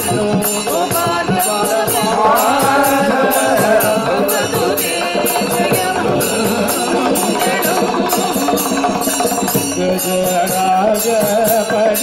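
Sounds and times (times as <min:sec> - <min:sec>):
devotional singing: 0:00.0 - 0:12.0
rhythmic percussion: 0:00.0 - 0:12.0.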